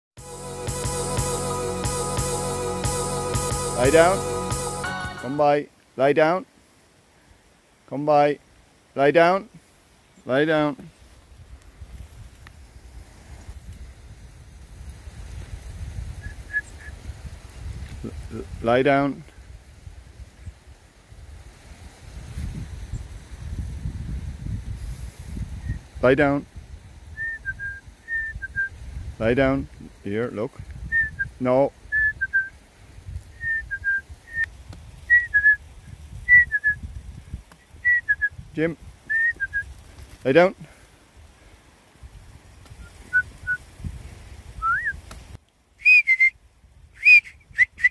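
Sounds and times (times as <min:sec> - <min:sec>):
faint short high notes: 0:00.2 - 0:05.6
wind buffeting microphone: 0:11.3 - 0:18.7, 0:19.4 - 0:30.0, 0:30.6 - 0:40.1, 0:42.0 - 0:45.4
person whistling a phrase: 0:45.8 - 0:46.3, 0:47.0 - 0:47.9.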